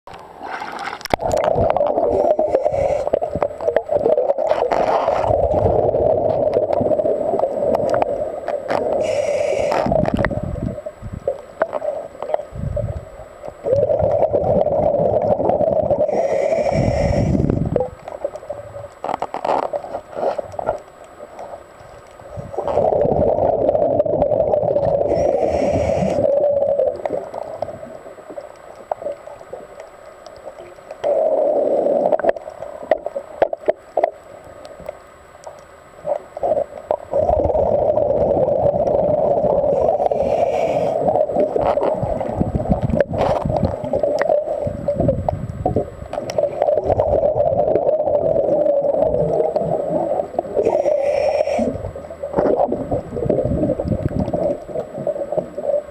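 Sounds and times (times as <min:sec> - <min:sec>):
exhaled bubbles underwater: 0:00.5 - 0:19.1, 0:22.2 - 0:34.9, 0:36.0 - 0:55.9
regulator hiss: 0:02.1 - 0:03.3, 0:08.9 - 0:10.0, 0:16.0 - 0:17.6, 0:25.0 - 0:26.4, 0:39.7 - 0:41.4, 0:49.9 - 0:51.9.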